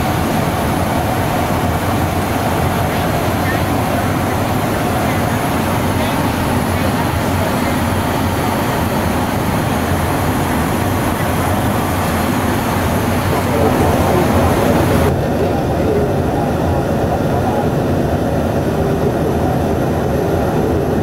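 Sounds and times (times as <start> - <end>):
airflow over fuselage: 0.0 - 21.0
jet engine drone in cabin: 0.0 - 21.0.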